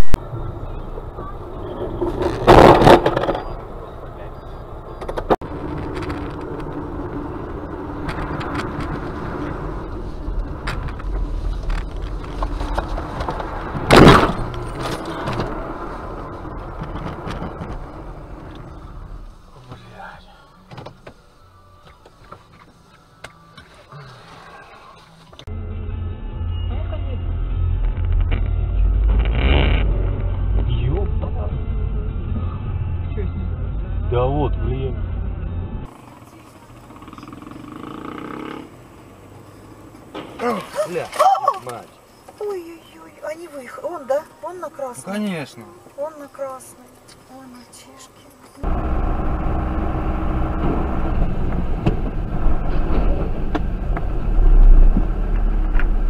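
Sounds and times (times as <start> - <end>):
engine and road rumble: 0.0 - 56.0
loud car crash impacts: 2.3 - 3.5, 13.7 - 15.6.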